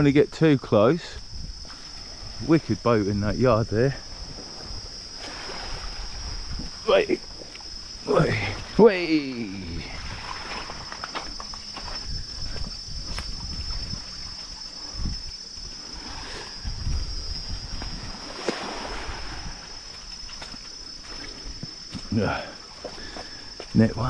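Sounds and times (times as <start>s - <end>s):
insect chorus drone: 0.0s - 24.0s.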